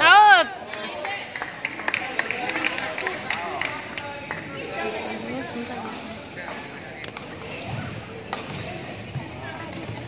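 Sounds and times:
chatter of spectators: 0.0 - 10.0.

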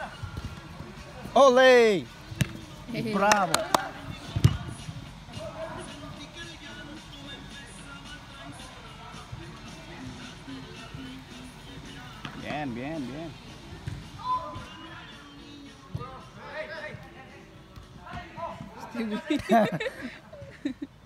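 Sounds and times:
background music: 0.0 - 17.7.

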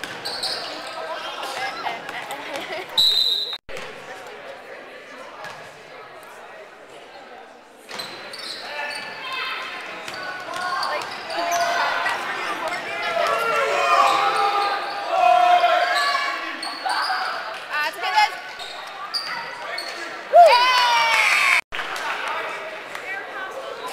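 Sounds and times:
spectators shouting and cheering: 10.8 - 18.2, 19.5 - 22.9.

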